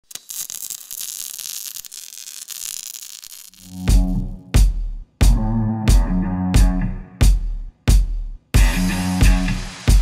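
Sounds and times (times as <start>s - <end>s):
electric sparks crackling: 0.0s - 4.3s.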